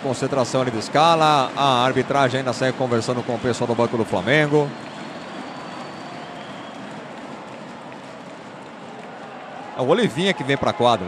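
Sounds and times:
murmur of a large crowd: 0:00.0 - 0:11.0.

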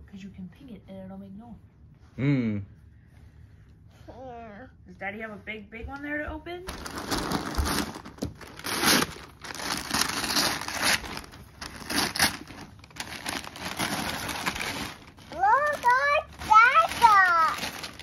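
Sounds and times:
wrapping paper tearing and crumpling: 0:06.7 - 0:18.0.

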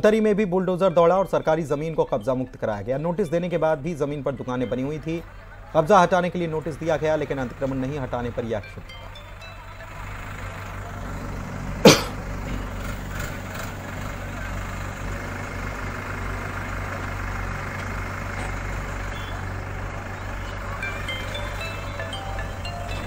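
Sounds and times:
bulldozer engine humming: 0:00.0 - 0:23.0.

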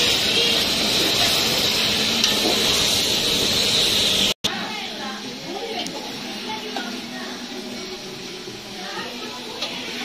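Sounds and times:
vegetables sizzling in hot oil: 0:00.0 - 0:10.0.

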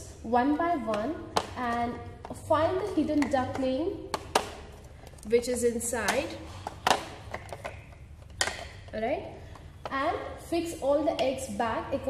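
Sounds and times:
plastic shells clicking and knocking: 0:02.2 - 0:05.3, 0:06.0 - 0:10.0.

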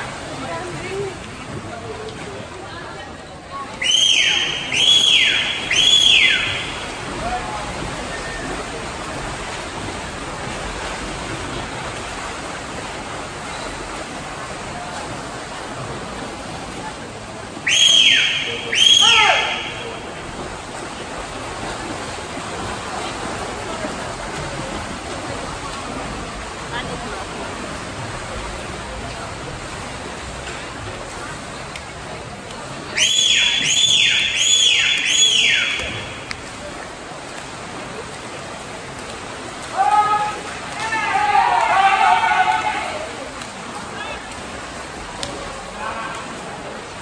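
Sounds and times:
swimmers splashing in pool: 0:00.0 - 0:47.0
shrill cheering whistles: 0:03.8 - 0:06.9, 0:17.6 - 0:20.0, 0:33.0 - 0:36.2.

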